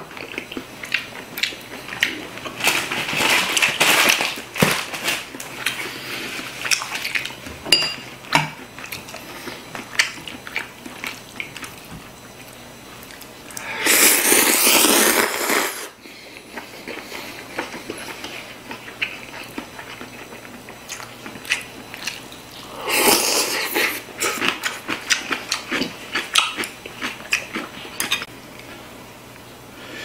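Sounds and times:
noodles slurped loudly: 13.8s - 15.9s.

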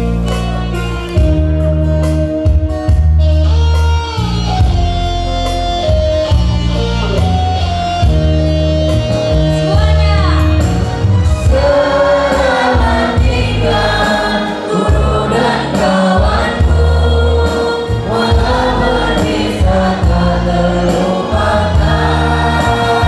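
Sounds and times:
musical accompaniment with bass: 0.0s - 23.0s
children singing into microphones: 11.5s - 23.0s.

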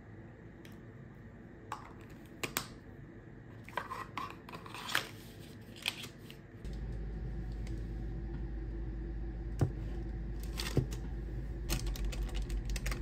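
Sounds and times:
low hum: 6.6s - 13.0s.

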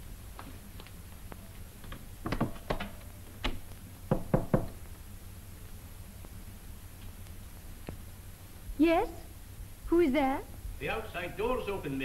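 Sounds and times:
knocking on wooden door: 4.1s - 4.8s.

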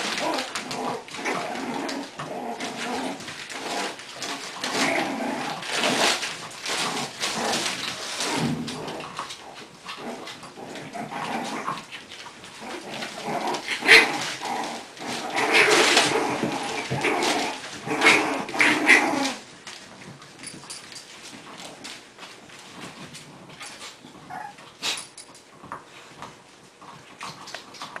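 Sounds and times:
puppies vocalizing while play-fighting: 0.0s - 28.0s.

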